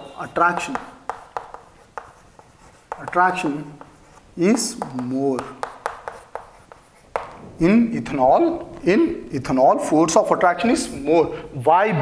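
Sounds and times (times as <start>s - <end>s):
chalk writing on chalkboard: 0.0s - 7.4s.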